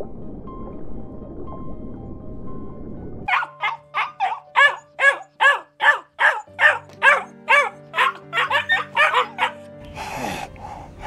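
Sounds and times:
dog barking rapidly: 3.3s - 9.6s
soft sustained music notes: 3.9s - 11.0s.

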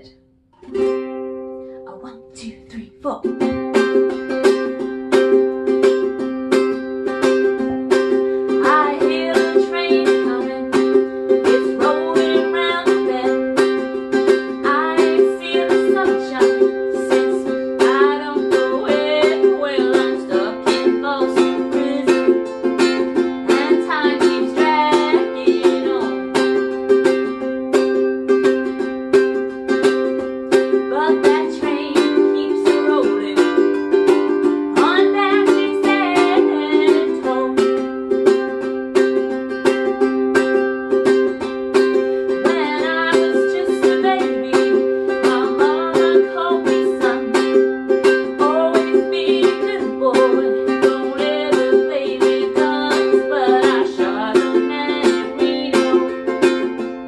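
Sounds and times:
ukulele strumming: 0.0s - 57.0s
woman singing: 1.8s - 5.5s, 6.7s - 27.6s, 30.5s - 38.6s, 41.2s - 57.0s.

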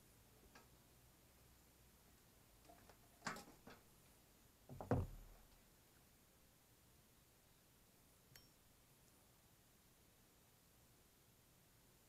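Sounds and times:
light clicks of metal parts: 0.4s - 0.8s
knock and thud on workbench: 4.7s - 5.3s.

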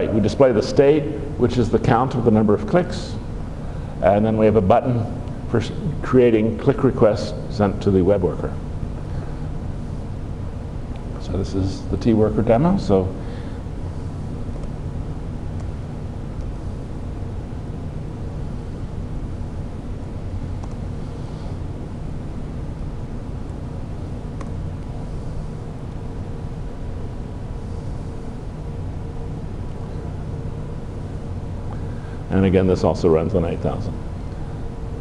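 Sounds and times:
room hum and hiss: 0.0s - 35.0s.

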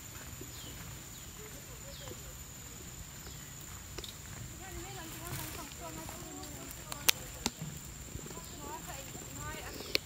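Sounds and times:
steady high-pitched whine: 0.0s - 10.0s
faint voices talking: 1.2s - 10.0s
footsteps on wooden boardwalk: 3.2s - 10.0s.

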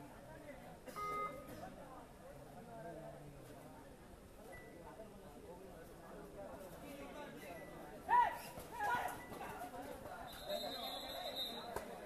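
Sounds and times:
people shouting and yelling: 8.0s - 9.7s.

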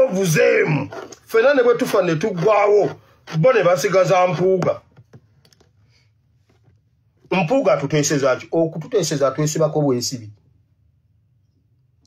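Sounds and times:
faint clicks and taps: 4.6s - 5.8s.

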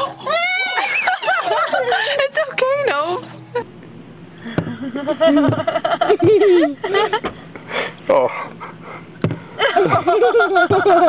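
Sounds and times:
high voices squealing and laughing: 0.0s - 1.2s.

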